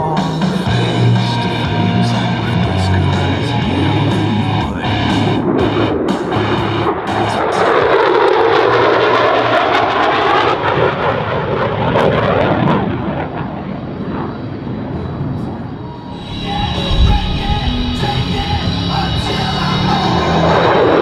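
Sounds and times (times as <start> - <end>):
rock music over loudspeakers: 0.0 - 9.1, 16.2 - 21.0
jet passing rushing noise: 3.4 - 10.9, 15.8 - 21.0.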